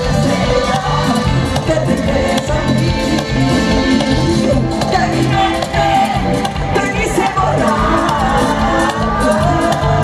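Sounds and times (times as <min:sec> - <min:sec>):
live pop band through pa: 0:00.0 - 0:10.0
woman singing lead vocal: 0:00.0 - 0:10.0.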